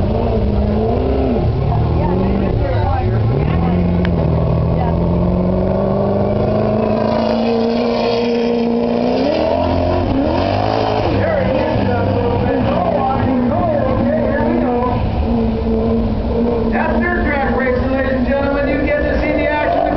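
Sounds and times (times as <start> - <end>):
race car engine running hard: 0.0 - 19.9.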